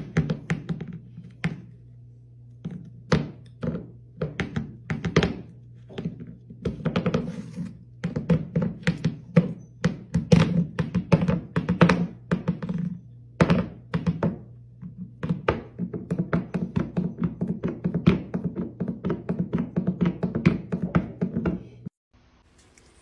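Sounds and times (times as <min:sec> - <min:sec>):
food bowl knocking on wooden floor: 0:02.6 - 0:07.3, 0:08.0 - 0:21.7.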